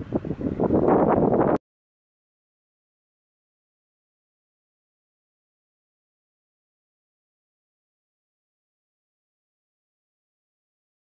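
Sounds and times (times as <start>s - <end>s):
wind buffeting microphone: 0.0s - 1.6s.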